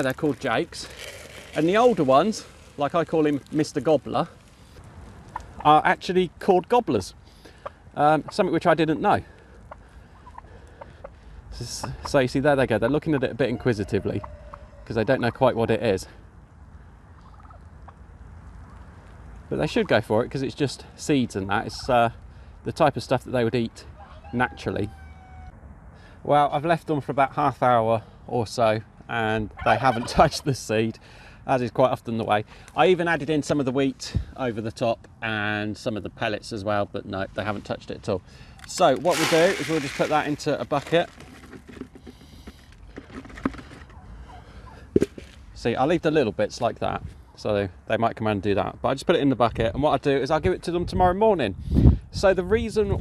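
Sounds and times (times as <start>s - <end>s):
seed sliding into plastic bucket: 0.0s - 3.8s, 38.8s - 43.9s
turkey call: 13.5s - 14.9s, 24.0s - 25.5s, 29.6s - 30.4s, 43.8s - 44.9s.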